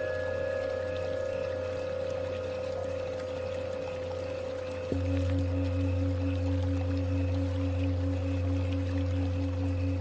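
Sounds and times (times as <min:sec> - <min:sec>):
faint running water: 0:00.0 - 0:10.0
low drone: 0:00.0 - 0:10.0
singing bowl ringing: 0:00.0 - 0:10.0.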